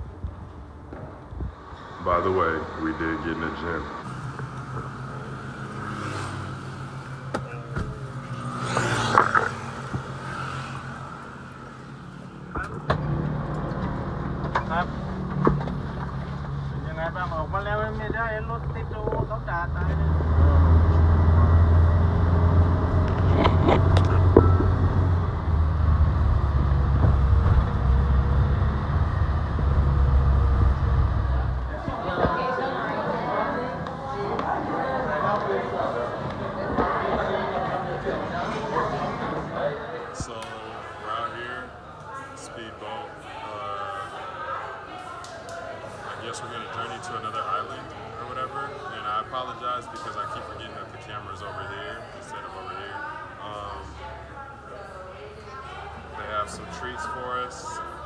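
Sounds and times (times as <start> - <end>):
van engine and road rumble: 0.0 - 44.7.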